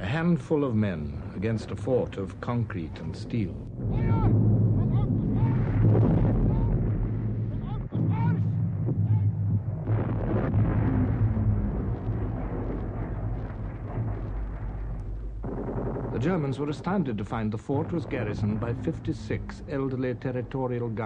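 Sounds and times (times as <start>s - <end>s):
low rumble of artillery: 0.0s - 21.0s.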